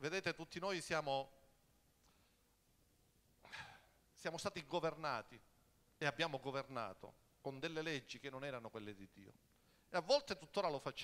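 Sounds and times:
man speaking: 0:00.0 - 0:01.4, 0:04.2 - 0:05.4, 0:06.0 - 0:11.0.

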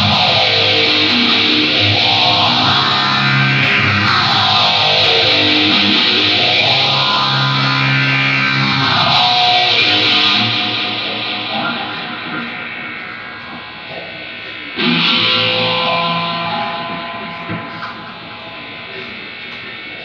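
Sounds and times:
distorted electric guitar chords: 0:00.0 - 0:20.0.

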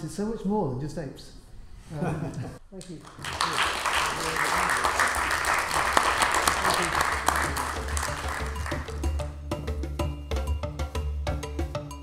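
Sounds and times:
audience applauding: 0:02.9 - 0:09.2
background music: 0:04.7 - 0:12.0
sharp percussive hits: 0:06.4 - 0:12.0.

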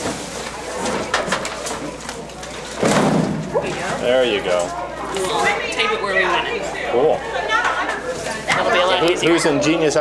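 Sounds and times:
overlapping chatter of people: 0:00.0 - 0:10.0.

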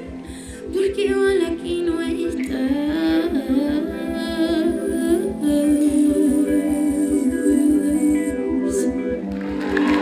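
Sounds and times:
woman singing into microphone: 0:00.0 - 0:09.6.

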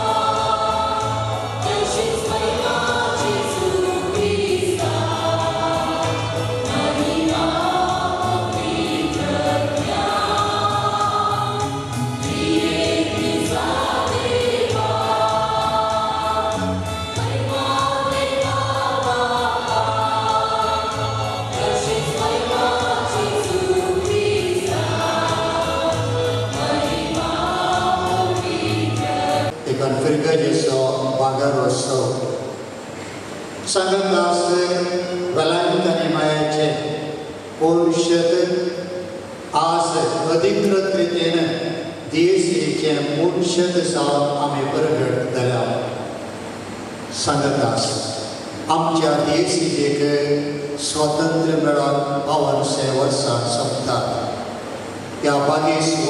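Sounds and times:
church choir singing a hymn: 0:00.0 - 0:32.9, 0:33.5 - 0:56.0.

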